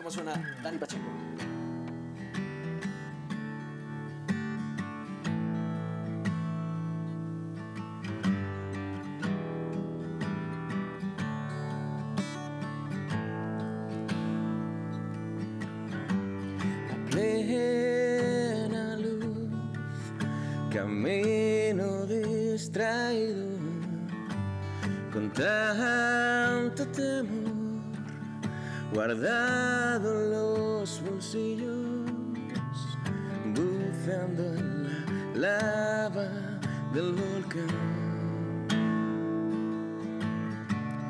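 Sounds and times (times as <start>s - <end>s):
acoustic guitar playing: 0.0s - 41.0s
man singing: 16.8s - 40.2s.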